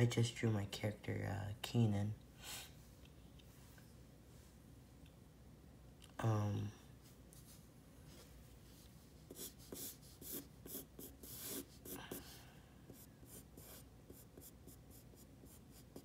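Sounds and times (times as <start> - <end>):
pencil sketching on paper: 9.1 - 16.0.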